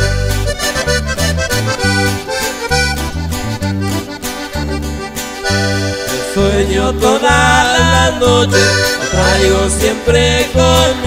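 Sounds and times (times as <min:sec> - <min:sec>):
accordion melody: 0:00.0 - 0:11.0
low bass line: 0:00.0 - 0:11.0
strummed guitar: 0:00.0 - 0:11.0.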